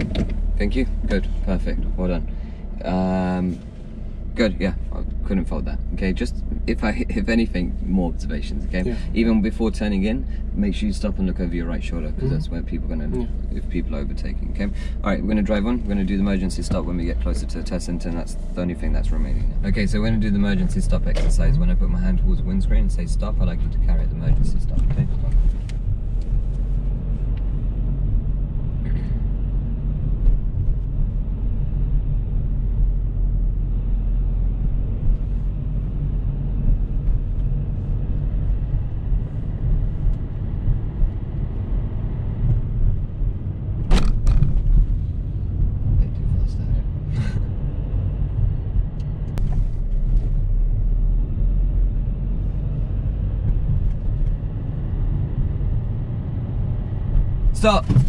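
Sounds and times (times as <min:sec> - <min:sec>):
car engine and tyres rumbling: 0:00.0 - 0:58.0.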